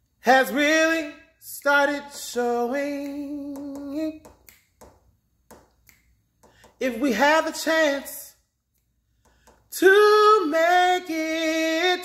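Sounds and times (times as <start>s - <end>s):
man singing: 0.2s - 4.5s, 6.8s - 8.4s, 9.7s - 12.0s
finger snaps: 3.0s - 6.8s.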